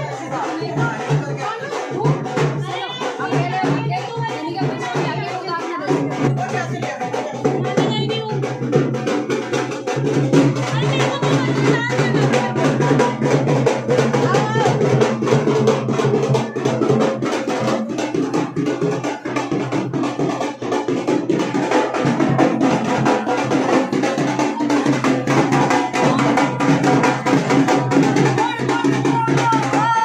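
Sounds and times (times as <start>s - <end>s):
crowd voices: 0.0s - 30.0s
fast loud drumming: 0.0s - 30.0s
music: 0.0s - 30.0s.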